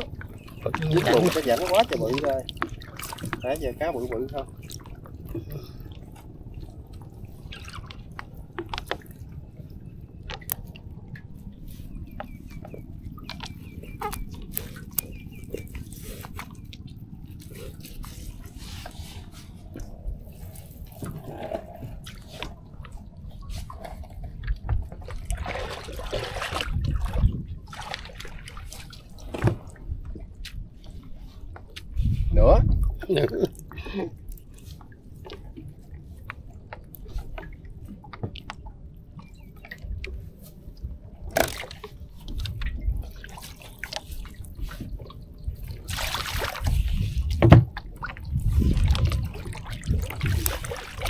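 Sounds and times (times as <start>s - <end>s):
water dripping and splashing: 0.0s - 5.5s, 21.0s - 30.6s, 41.4s - 51.0s
clicks and knocks on hull: 41.2s - 45.2s, 47.1s - 51.0s.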